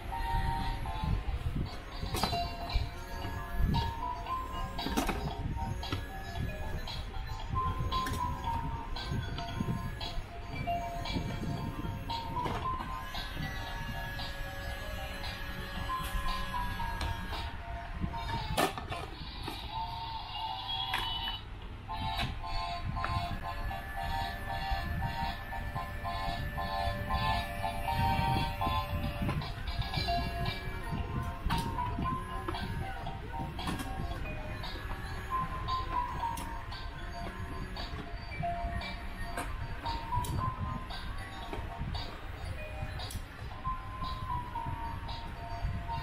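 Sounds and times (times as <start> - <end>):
claw machine electronic tune: 0.0 - 18.6, 21.9 - 46.0.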